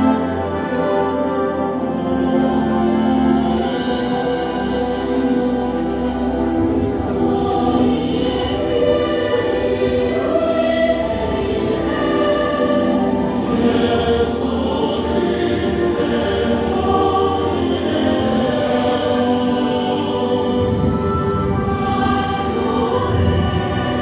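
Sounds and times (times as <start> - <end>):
choir singing held notes: 0.0 - 24.0.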